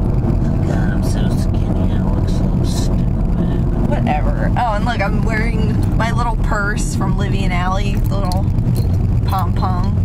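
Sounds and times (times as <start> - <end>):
car cabin rumble: 0.0 - 10.0
woman talking: 0.5 - 8.6, 9.2 - 10.0.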